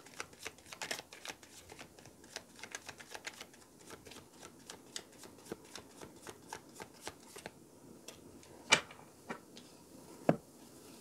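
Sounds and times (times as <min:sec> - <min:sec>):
cards being shuffled: 0:00.0 - 0:07.5.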